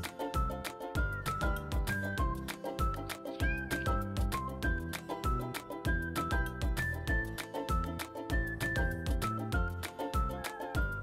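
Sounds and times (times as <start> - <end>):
cute background music: 0.0 - 11.0
kitten mewing: 3.3 - 4.0.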